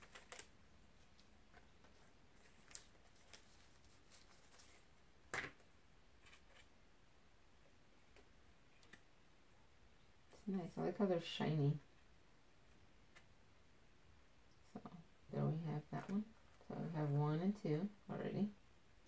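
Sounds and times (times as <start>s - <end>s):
card wrapper rustling and clicking: 0.0s - 5.6s.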